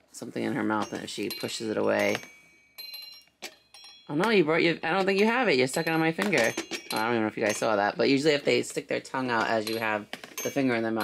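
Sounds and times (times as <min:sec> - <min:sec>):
person speaking: 0:00.0 - 0:02.2, 0:04.1 - 0:11.0
high bell-like toy ringing: 0:00.6 - 0:08.1, 0:09.2 - 0:11.0.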